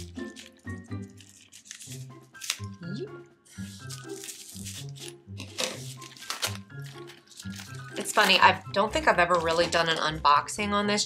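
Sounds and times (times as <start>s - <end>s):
plastic wrap crinkling and tearing: 0.0s - 2.8s, 3.5s - 8.6s
background music: 0.0s - 11.0s.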